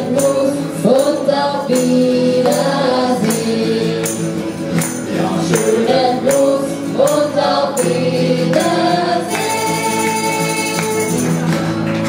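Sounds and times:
women singing: 0.0s - 11.3s
strummed acoustic guitars: 0.0s - 12.0s
tambourine: 0.0s - 12.0s.

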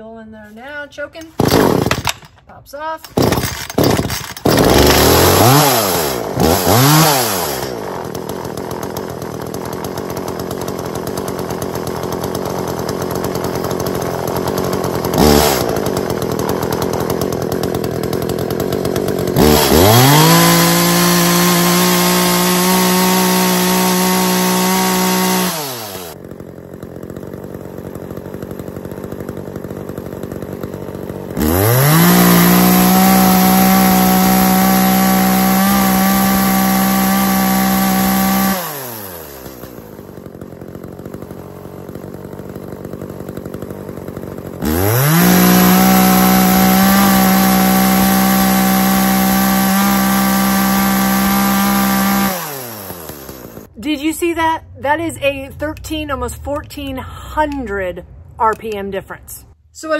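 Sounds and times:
chainsaw revving: 1.2s - 58.8s.

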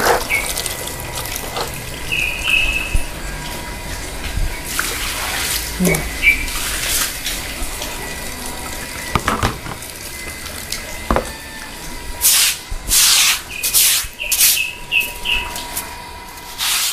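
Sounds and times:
water swishing across floor: 0.0s - 9.1s
sharp knocks: 9.2s - 9.8s.

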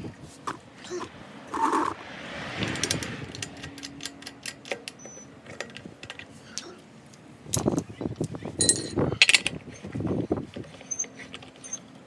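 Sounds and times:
metallic clicks of lug nuts: 3.3s - 6.7s.

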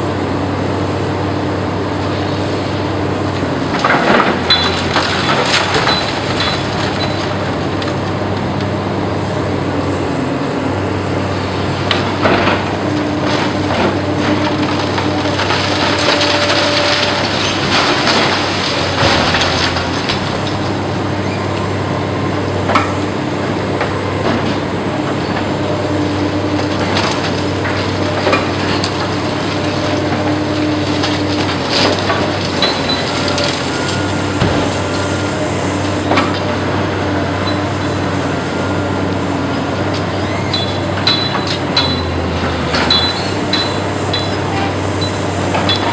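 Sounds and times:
excavator engine and hydraulics: 0.0s - 45.9s
concrete cracking and crunching: 12.1s - 20.8s.

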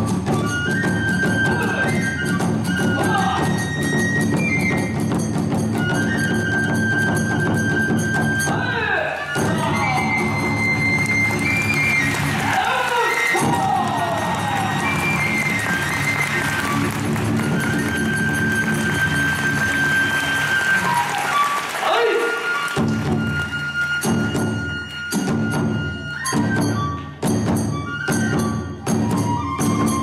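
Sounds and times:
bamboo flute playing sliding notes: 0.0s - 30.0s.

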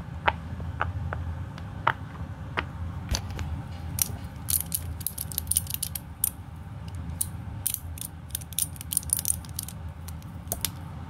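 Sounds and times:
plastic fidget toy clicking: 4.0s - 6.4s, 7.2s - 10.8s.

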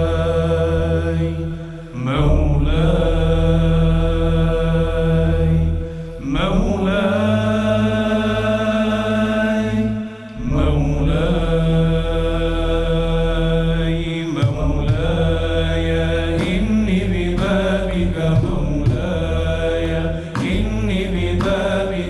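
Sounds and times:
male chorus drone: 0.0s - 22.0s
man singing devotional song: 6.2s - 22.0s.

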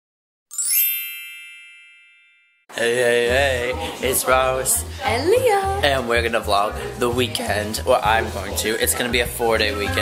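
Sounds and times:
bright bell-like chime: 0.5s - 2.7s.

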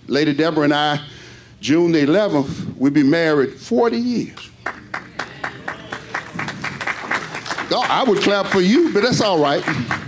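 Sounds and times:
people clapping: 4.4s - 10.0s.

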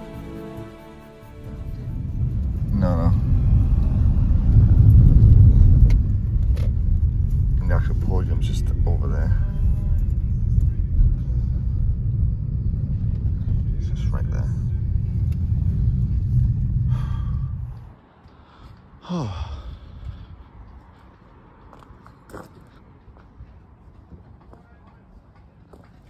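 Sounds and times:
car engine and road rumble: 1.4s - 25.9s.

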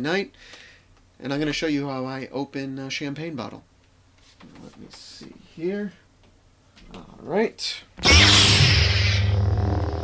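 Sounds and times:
lightsaber igniting and humming: 8.0s - 10.0s.

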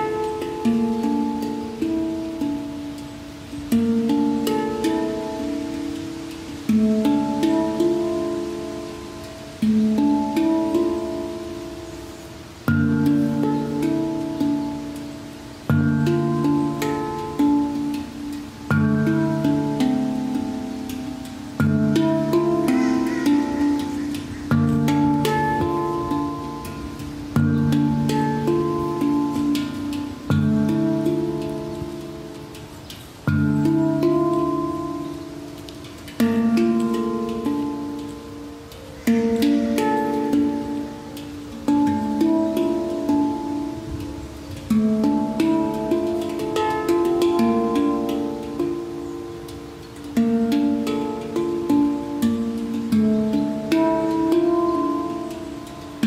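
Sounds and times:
handpan melody: 0.0s - 56.0s.

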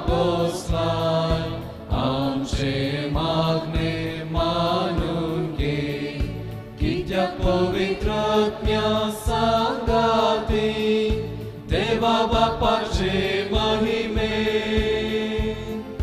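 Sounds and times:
hymn singing with instruments: 0.0s - 16.0s.

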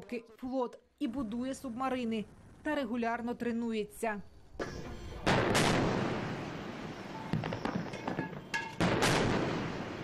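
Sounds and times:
long rumble of gunshots: 5.3s - 6.7s, 8.8s - 10.0s.

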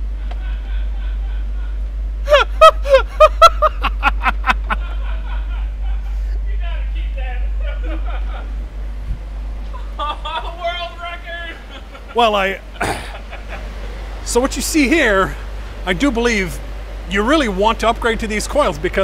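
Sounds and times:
steady low hum: 0.0s - 19.0s
man laughing: 0.1s - 8.6s, 9.6s - 13.8s.

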